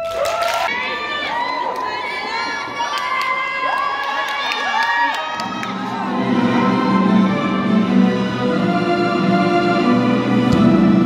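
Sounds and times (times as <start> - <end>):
children cheering and shouting: 0.0 - 7.1
music: 5.4 - 11.0.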